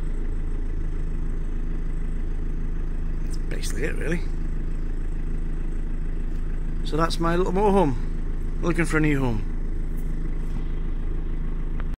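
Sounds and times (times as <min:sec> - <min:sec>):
bus engine idling: 0:00.0 - 0:12.0.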